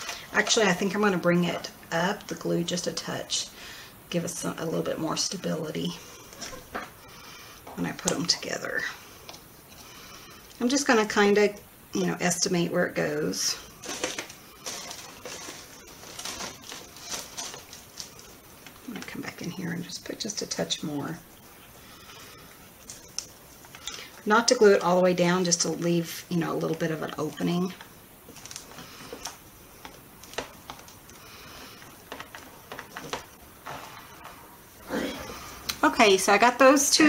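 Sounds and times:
album shuffling: 0:00.0 - 0:03.2, 0:13.0 - 0:36.5
paper crinkles: 0:13.6 - 0:19.8, 0:21.4 - 0:25.8, 0:26.6 - 0:34.5
paper rustling and scraping: 0:13.8 - 0:18.7, 0:31.6 - 0:34.5.

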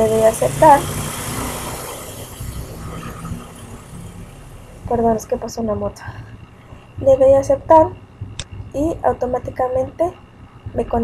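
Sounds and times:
motorcycle passing by: 0:00.0 - 0:05.5.

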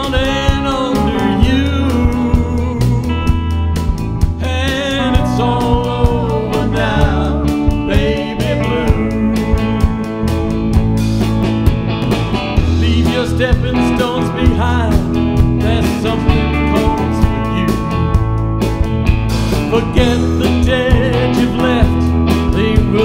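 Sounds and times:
bass guitar: 0:00.0 - 0:23.0
drum kit beat: 0:00.0 - 0:23.0
electric guitars: 0:00.0 - 0:23.0.

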